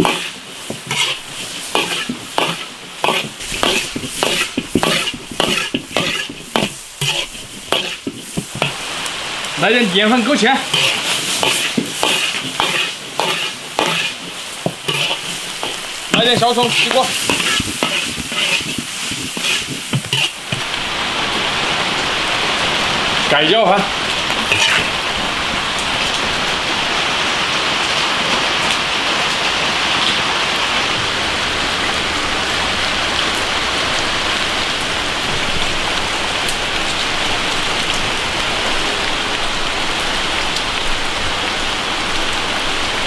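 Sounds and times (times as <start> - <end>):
metal ladle scraping a wok: 0.0 - 8.9, 10.6 - 20.8, 24.4 - 25.1
food sizzling: 0.0 - 27.0
rain hiss: 0.0 - 43.0.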